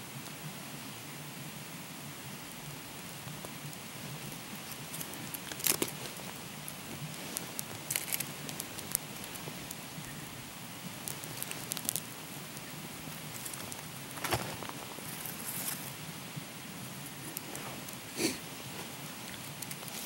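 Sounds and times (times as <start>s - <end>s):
small fire crackling and popping: 0.1s - 20.0s
dry stalks rustling: 3.2s - 20.0s.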